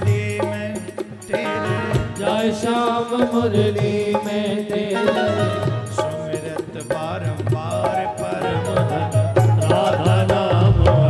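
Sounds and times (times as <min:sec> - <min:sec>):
devotional chanting: 0:00.0 - 0:11.0.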